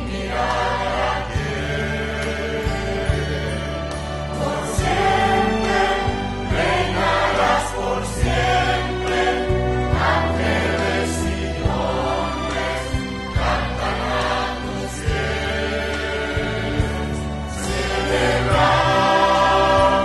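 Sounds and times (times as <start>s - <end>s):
choir singing: 0.0s - 20.0s
sustained bass line: 0.0s - 20.0s.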